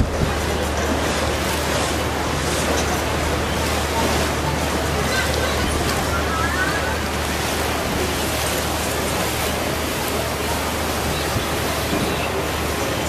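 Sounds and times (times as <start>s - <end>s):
wind rushing over microphone: 0.0s - 0.4s
water churning along boat hull: 0.0s - 13.0s.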